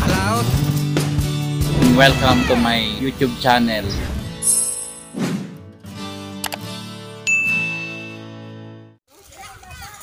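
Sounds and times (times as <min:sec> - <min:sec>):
bright bell ding: 0:07.3 - 0:08.4.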